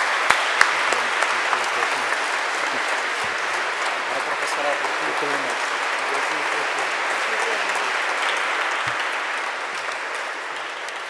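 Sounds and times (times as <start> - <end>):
audience applauding: 0.0 - 11.0
voices: 0.9 - 8.1.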